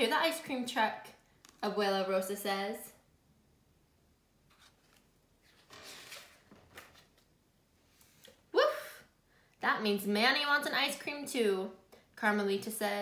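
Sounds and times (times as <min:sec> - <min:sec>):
book page turning: 0:04.5 - 0:07.3.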